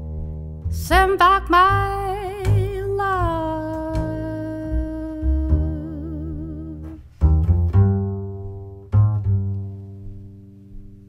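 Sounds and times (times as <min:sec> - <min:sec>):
plucked double bass: 0:00.0 - 0:11.0
woman singing long vibrato note: 0:00.8 - 0:07.0.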